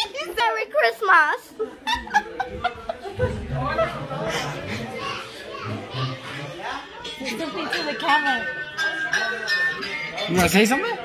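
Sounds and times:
children's voices: 0:04.4 - 0:06.8.

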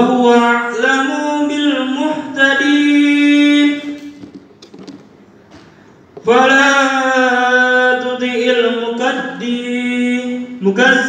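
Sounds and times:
man chanting melodically: 0:00.0 - 0:04.2, 0:06.2 - 0:11.0.

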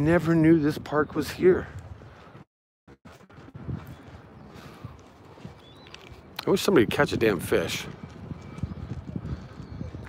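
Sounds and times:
footsteps on dirt path: 0:00.0 - 0:10.0
outdoor background noise: 0:00.0 - 0:10.0.

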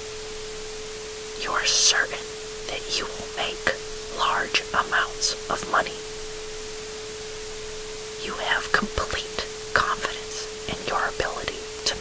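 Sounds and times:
background hiss: 0:00.0 - 0:12.0
person whispering: 0:01.4 - 0:06.0, 0:08.2 - 0:12.0.

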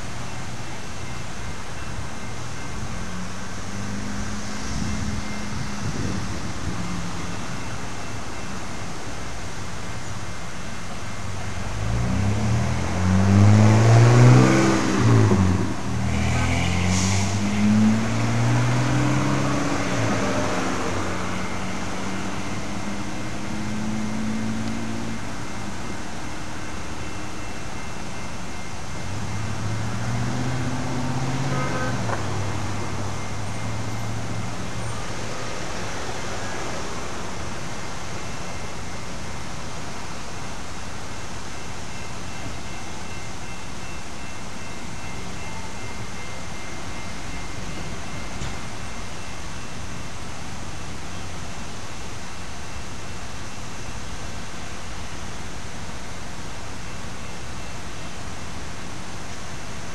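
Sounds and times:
low engine hum: 0:00.0 - 0:59.9
vehicle passing by: 0:03.0 - 0:07.1, 0:11.8 - 0:25.3, 0:29.0 - 0:37.8.

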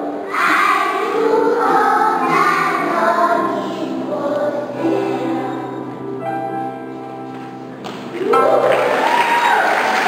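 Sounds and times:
children's choir singing: 0:00.0 - 0:06.2.

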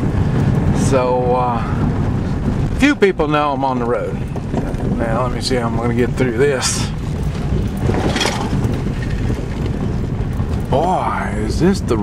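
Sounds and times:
car driving on gravel road: 0:00.0 - 0:12.0.

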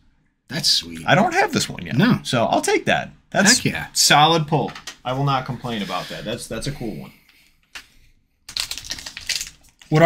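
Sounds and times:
foil wrapper crinkling: 0:08.5 - 0:10.0
foil wrapper tearing open: 0:08.5 - 0:10.0.

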